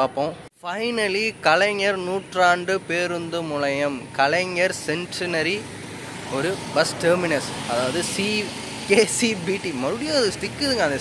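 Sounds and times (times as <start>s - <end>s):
man talking: 0.0s - 5.7s, 6.3s - 11.0s
outdoor background noise: 0.0s - 11.0s.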